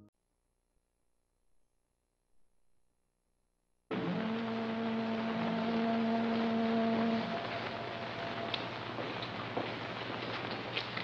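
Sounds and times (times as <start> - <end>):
long horn blast: 3.9 - 9.0.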